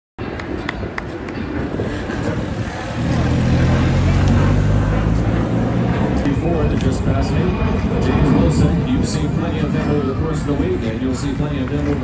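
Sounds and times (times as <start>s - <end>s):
racing bicycles passing: 0.2s - 12.0s.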